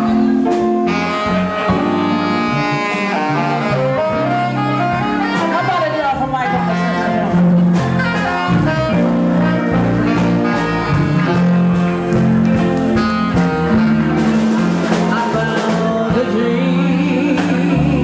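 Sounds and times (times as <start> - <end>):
blues band playing: 0.0 - 18.0
saxophone: 0.0 - 18.0.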